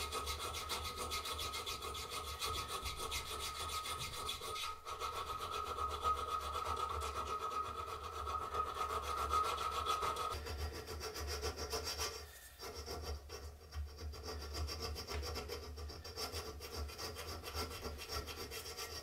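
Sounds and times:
file rasping on steel: 0.0 - 19.0.

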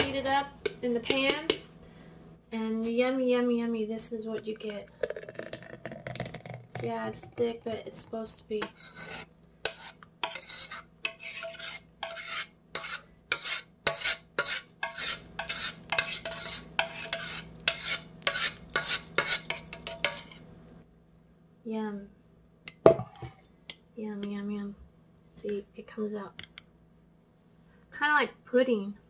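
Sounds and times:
metal spoon scraping saucepan: 0.0 - 1.7, 4.4 - 20.5.

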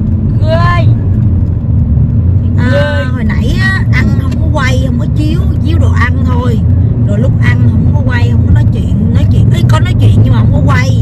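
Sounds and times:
car road and engine rumble: 0.0 - 11.0
woman speaking: 0.4 - 1.0, 2.5 - 11.0.

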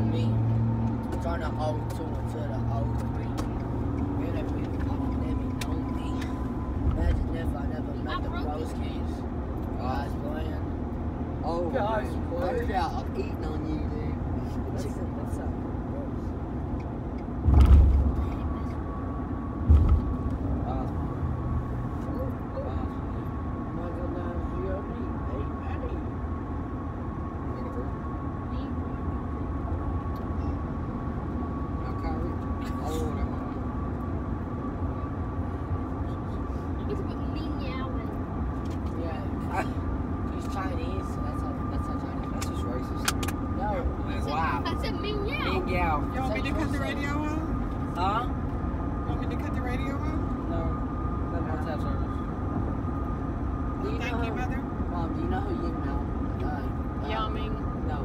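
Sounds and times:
faint whine: 11.4 - 58.0
low rumble: 17.1 - 22.3.

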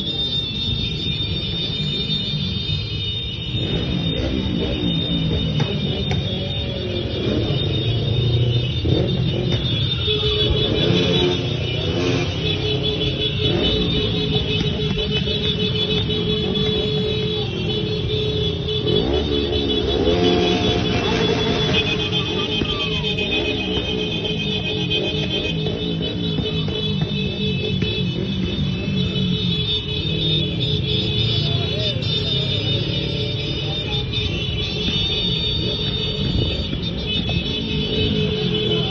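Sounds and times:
motorcycle engines revving: 0.0 - 38.9.

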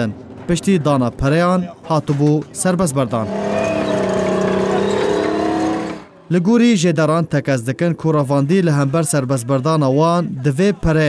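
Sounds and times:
tracked vehicle engine drone: 3.1 - 6.2.

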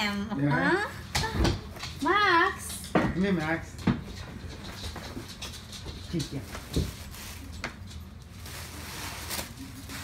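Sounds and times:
paper gift bag rustling: 6.3 - 10.0
sharp paper crackle: 8.2 - 10.0.

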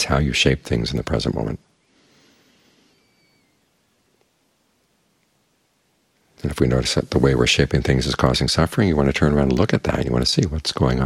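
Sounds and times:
faint high thin whistle: 2.9 - 3.6.

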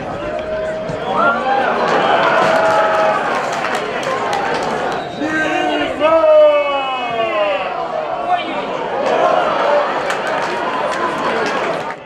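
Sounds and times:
stadium crowd noise: 0.0 - 12.0
people shouting: 0.5 - 11.4
loud drawn-out shout: 0.5 - 11.9.

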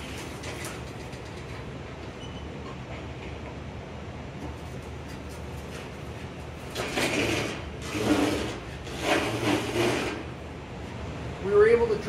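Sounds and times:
sheet metal scraping across floor: 6.6 - 10.4.

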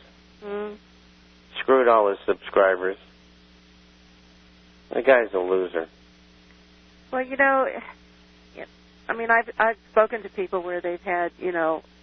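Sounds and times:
faint hiss: 0.0 - 10.2
electrical mains hum: 0.0 - 12.0.

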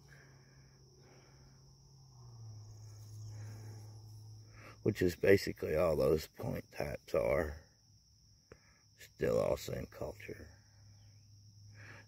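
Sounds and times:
low hum: 0.0 - 5.2
crickets chirping: 0.0 - 12.0.

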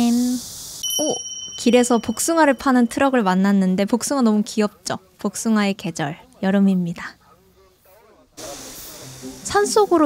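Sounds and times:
steady outdoor hiss: 0.0 - 6.2, 7.4 - 10.0.

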